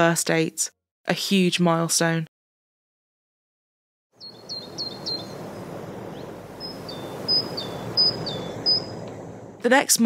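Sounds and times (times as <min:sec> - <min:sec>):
birds chirping: 0:04.2 - 0:09.0
outdoor background rush: 0:04.3 - 0:09.6.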